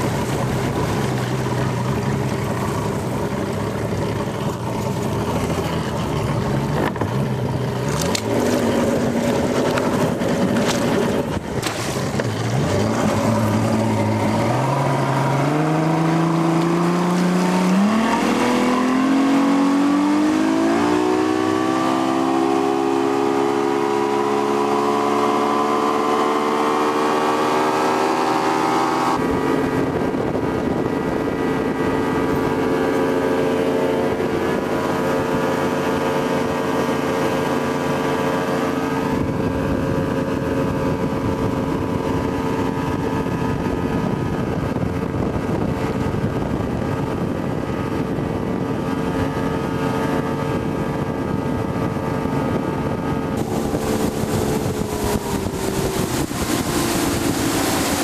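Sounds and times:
motorboat engine: 0.0 - 58.0.

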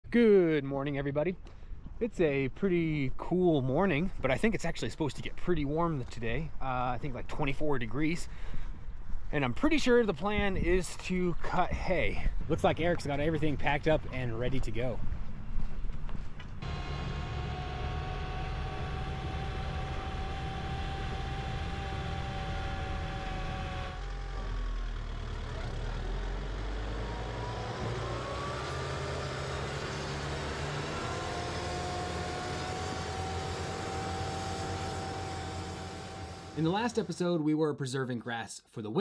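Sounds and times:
steady whine: 16.4 - 24.9, 27.2 - 37.2
tractor diesel engine running: 16.6 - 37.1.

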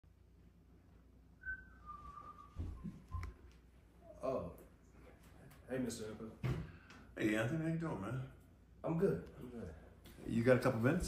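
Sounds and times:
person whistling: 1.4 - 3.4.

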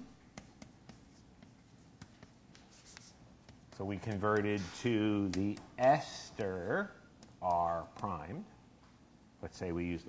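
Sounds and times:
chalk scratching on blackboard: 0.2 - 8.2
chalk tapping on blackboard: 0.2 - 8.3.

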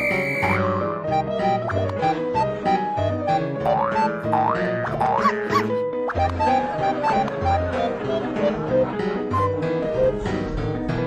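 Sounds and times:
playful comedy music: 0.0 - 11.0
rising boing pitch glides: 0.4 - 1.2, 3.6 - 5.8.

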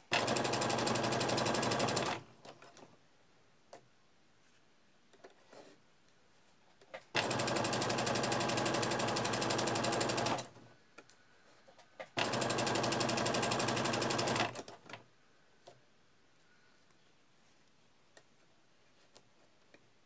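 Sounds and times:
sewing machine stitching: 0.1 - 2.2, 7.1 - 10.6, 12.2 - 15.0.

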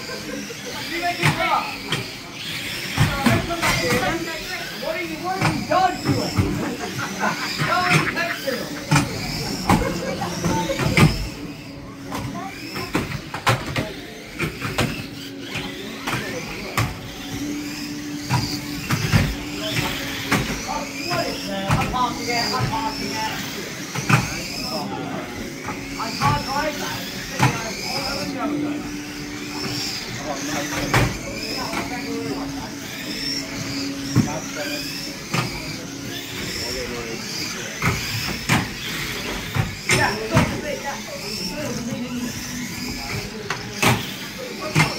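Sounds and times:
small motors whining: 0.0 - 44.9
toy cars knocking together: 18.2 - 24.7, 36.4 - 42.2, 42.8 - 44.9.

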